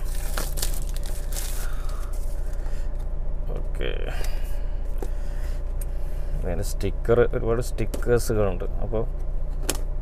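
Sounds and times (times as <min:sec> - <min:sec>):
plastic wrapping rustling: 0:00.0 - 0:02.4
low car cabin hum: 0:00.0 - 0:10.0.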